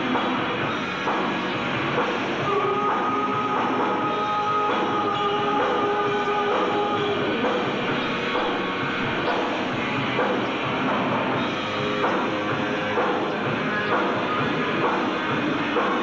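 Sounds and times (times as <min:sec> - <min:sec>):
hard rock band playing: 0:00.0 - 0:16.0.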